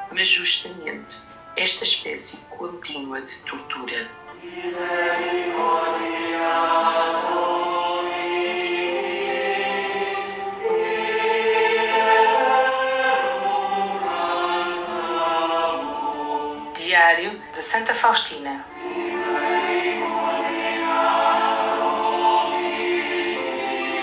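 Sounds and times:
choir singing sacred music: 0.0 - 24.0.

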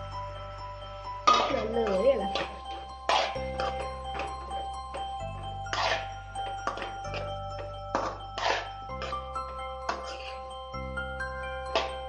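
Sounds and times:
background music: 0.0 - 12.0
metal ladle scraping a pan: 1.3 - 4.2, 5.7 - 7.2, 7.9 - 9.3, 9.9 - 10.4.

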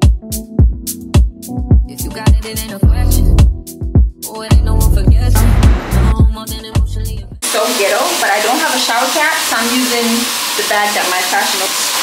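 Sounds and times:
woman speaking: 7.5 - 11.8.

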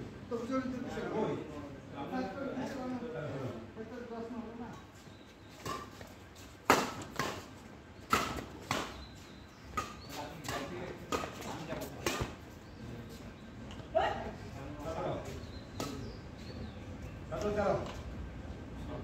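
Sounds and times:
racquets smacking shuttlecock: 5.6 - 12.4.

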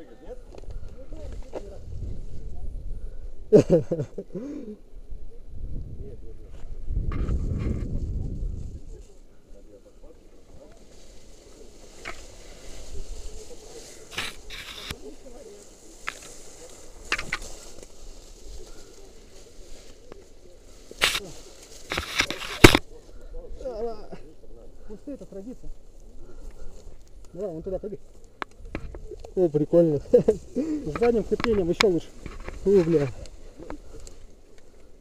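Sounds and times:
wind rumble on microphone: 0.5 - 3.5, 4.9 - 9.1
rope and gloves clicking rustling: 10.7 - 22.9, 30.0 - 35.0.

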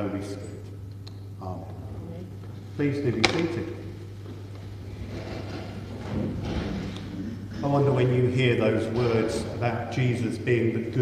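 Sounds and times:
chairs and pews thudding: 3.1 - 8.0, 8.8 - 9.6.

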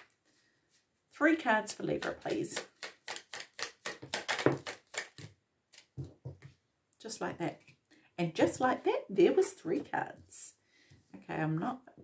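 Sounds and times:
cards being shuffled: 2.0 - 6.2.

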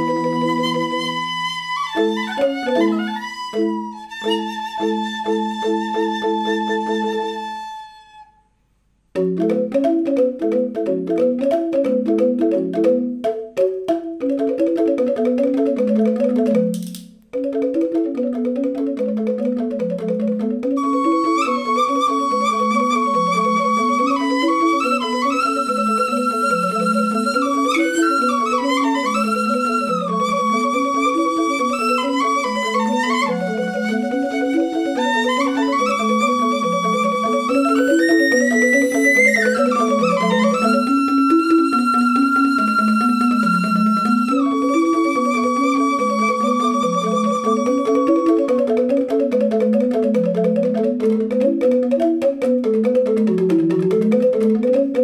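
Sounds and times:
bamboo xylophones playing patterns: 0.0 - 8.4, 9.1 - 55.0
bamboo flute melody: 0.0 - 8.5, 17.8 - 52.0.

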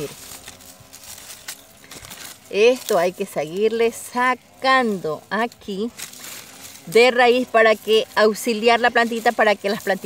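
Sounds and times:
leaves rustling: 0.0 - 10.0.

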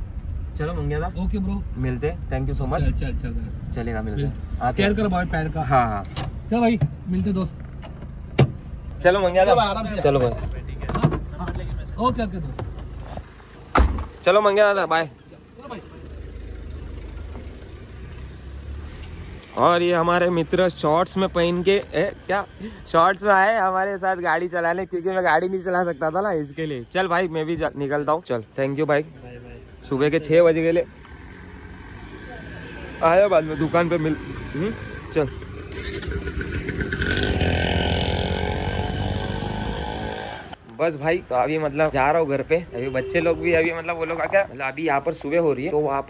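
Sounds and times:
car engine rumbling: 0.0 - 46.0
motorbike engine revving: 31.3 - 40.6.

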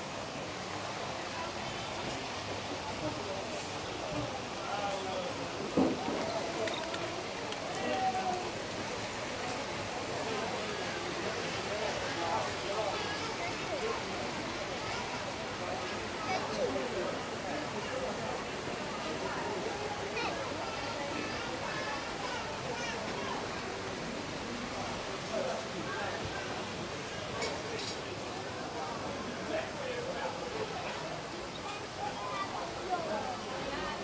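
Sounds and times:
background noise wash: 0.0 - 34.0
indistinct chatter of voices: 0.0 - 34.0.

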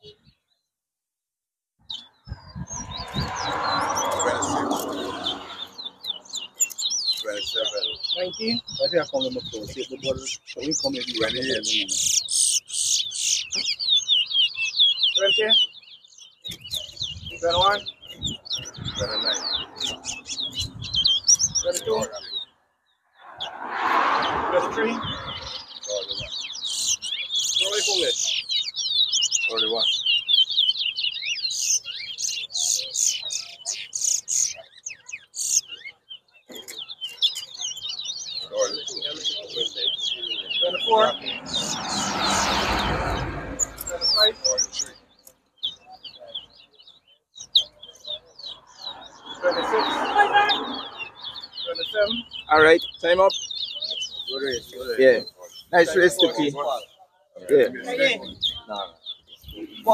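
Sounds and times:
finch singing whistled notes: 1.8 - 22.5, 24.9 - 42.1, 42.8 - 57.3.

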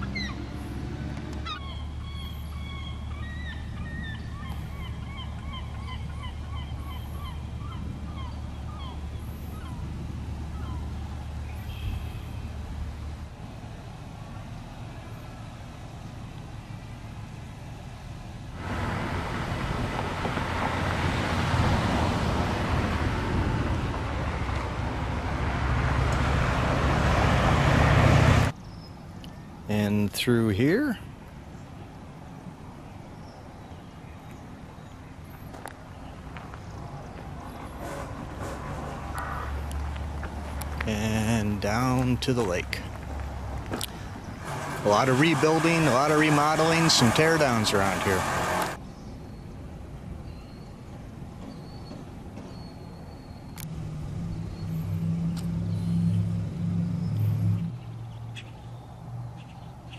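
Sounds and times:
birds calling: 0.0 - 13.1, 32.4 - 49.5, 51.4 - 59.9
loud rushing noise: 18.6 - 28.5, 44.3 - 48.8.

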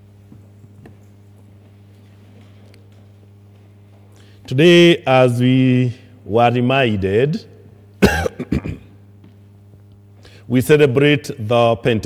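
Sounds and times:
man coughing: 8.0 - 9.0.

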